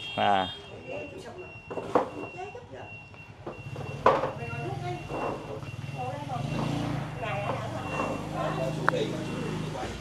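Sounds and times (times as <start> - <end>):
indistinct voices: 4.2 - 10.0.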